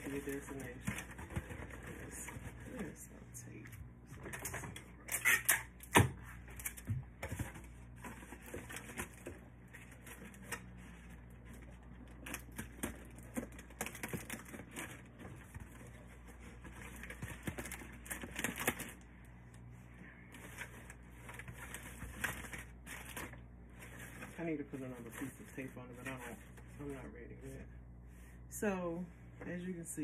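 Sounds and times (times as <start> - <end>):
foil crinkling and rustling: 0.0 - 3.0, 6.3 - 19.6, 20.3 - 27.4.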